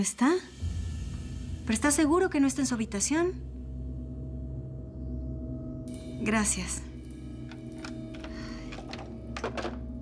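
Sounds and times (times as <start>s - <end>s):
telephone handset clunks on cradle: 7.5s - 9.8s.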